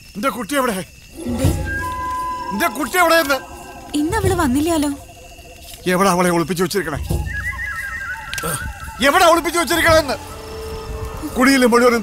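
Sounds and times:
low rumble: 1.1 - 7.0, 9.2 - 12.0
high wavering animal call: 1.2 - 12.0.

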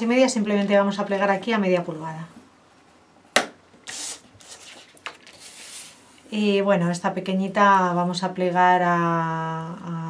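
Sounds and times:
faint scratching of scoring: 3.9 - 6.1.

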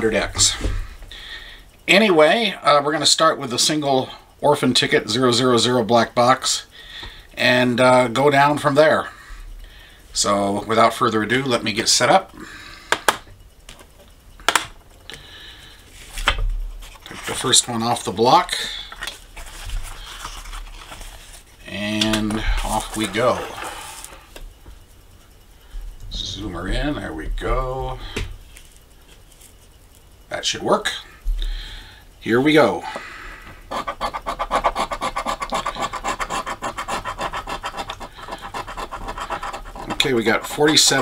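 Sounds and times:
rustling of paper tickets: 19.0 - 24.1
scratching lottery ticket: 33.7 - 41.0.

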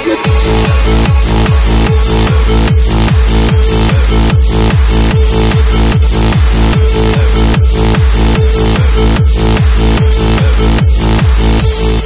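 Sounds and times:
hard dance track: 0.0 - 12.0
heavy kick drum: 0.1 - 12.0.

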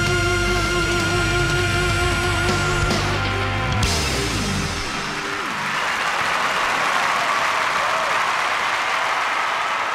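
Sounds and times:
live band music: 0.0 - 5.6
audience applauding: 4.6 - 9.9.

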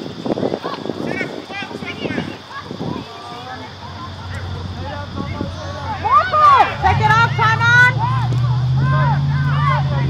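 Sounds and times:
voices shouting: 0.0 - 10.0
low engine hum: 3.6 - 10.0.

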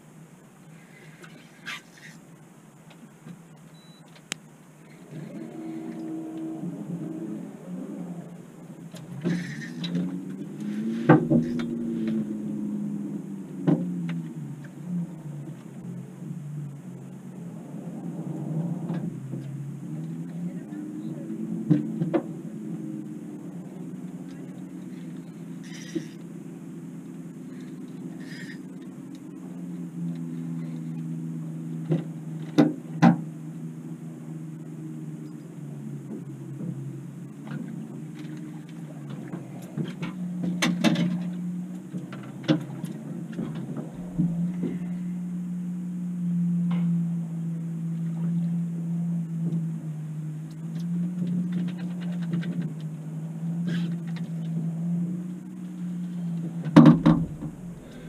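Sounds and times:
boat motor humming: 0.0 - 58.0.

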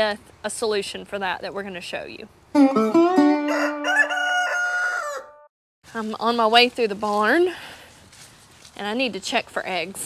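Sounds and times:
rooster crowing: 3.4 - 5.5.

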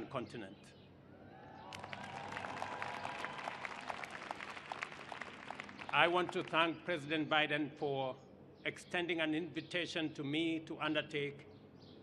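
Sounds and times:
audience applauding: 1.7 - 6.5.

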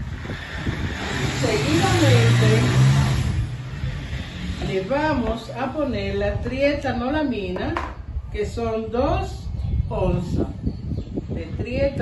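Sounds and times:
rushing noise with low hum: 0.0 - 12.0.

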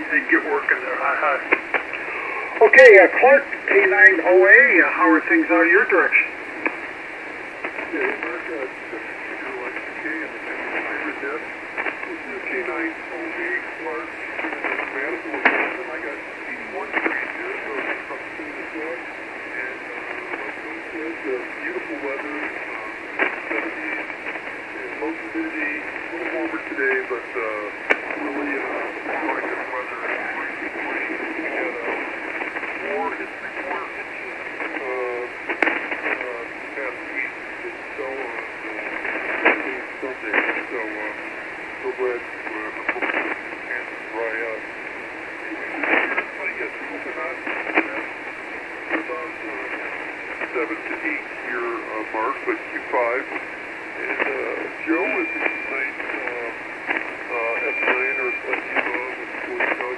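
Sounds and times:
person talking over radio: 0.0 - 6.8, 7.7 - 59.9
radio band noise: 0.0 - 59.9
static crackles: 0.0 - 59.9.

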